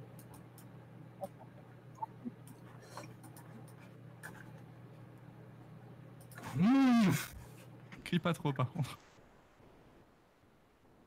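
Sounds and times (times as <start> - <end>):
steady low hum: 0.0 - 11.0
faint scattered clicks: 0.1 - 2.6.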